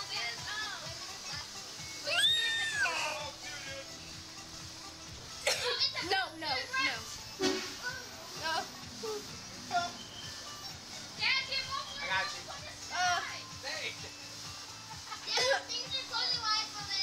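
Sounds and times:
background music: 0:00.0 - 0:17.0
children shouting and squealing: 0:02.0 - 0:03.8
voices: 0:05.5 - 0:14.0.

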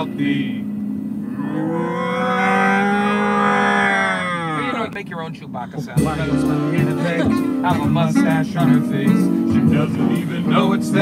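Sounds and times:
man doing growling roar: 0:01.2 - 0:04.9.

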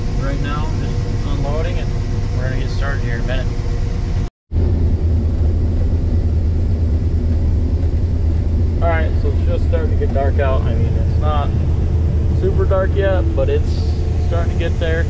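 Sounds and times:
combine harvester low drone: 0:00.0 - 0:15.0.

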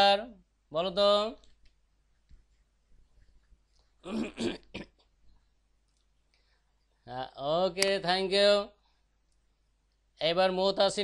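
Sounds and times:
person speaking: 0:00.0 - 0:04.9, 0:07.0 - 0:08.8.

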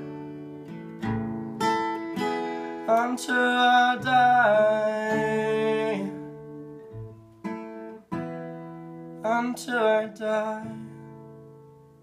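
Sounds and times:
acoustic guitar strummed: 0:00.0 - 0:12.0.

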